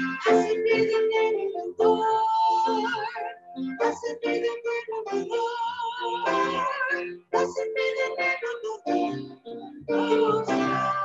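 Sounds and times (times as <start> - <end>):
piano accompaniment: 0.0 - 11.0
woman singing a hymn: 0.0 - 11.0.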